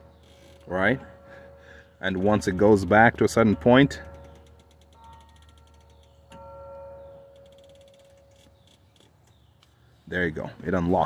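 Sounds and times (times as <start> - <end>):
seat belt retractor ratcheting: 4.1 - 6.1, 7.4 - 9.4.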